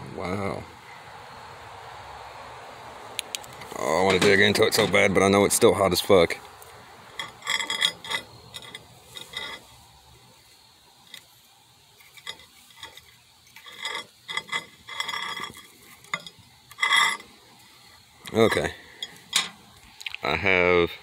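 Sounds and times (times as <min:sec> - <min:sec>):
scraping and clinking on glass: 0:07.1 - 0:09.7, 0:12.0 - 0:17.3.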